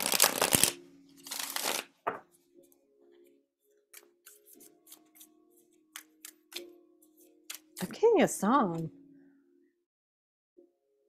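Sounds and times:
cards being shuffled: 0:00.0 - 0:01.9, 0:04.0 - 0:05.3.

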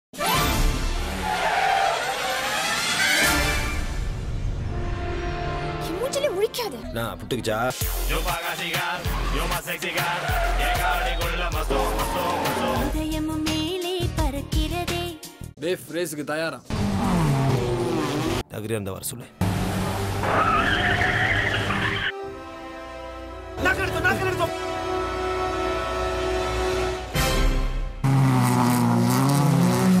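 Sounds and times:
music: 0:00.2 - 0:15.6, 0:19.2 - 0:28.0.

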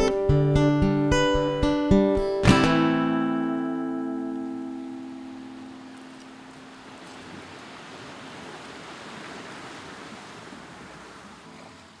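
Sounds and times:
acoustic guitar chord: 0:00.0 - 0:06.7
sea surf washing in: 0:03.8 - 0:12.0.

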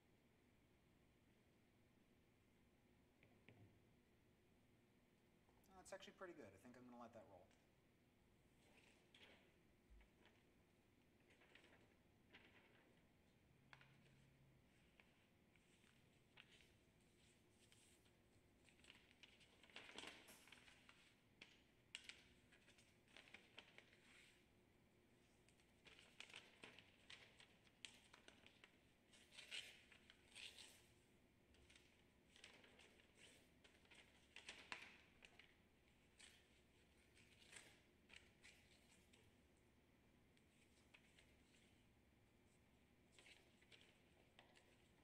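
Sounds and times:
paper rustling and crinkling: 0:08.6 - 0:24.5, 0:25.1 - 0:39.6, 0:40.3 - 0:45.0.

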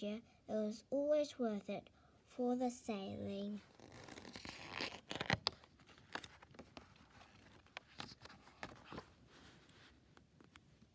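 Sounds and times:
paper rustling: 0:03.8 - 0:10.6.

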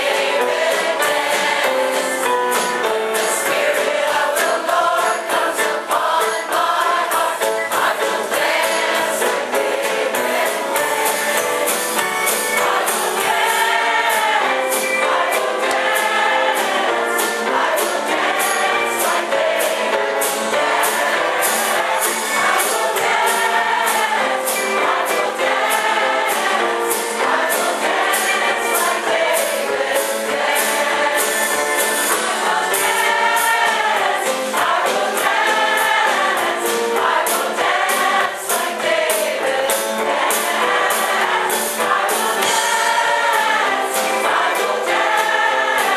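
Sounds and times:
choir singing gospel song: 0:00.0 - 0:45.9
steady percussive beat: 0:00.0 - 0:45.9.

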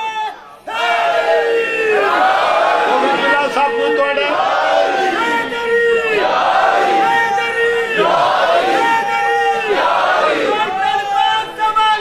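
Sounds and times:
crowd of men shouting together: 0:00.0 - 0:12.0.

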